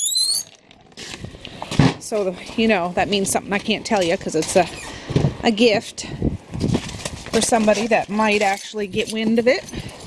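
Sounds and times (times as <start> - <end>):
door hinge squeaking: 0.0 - 0.5.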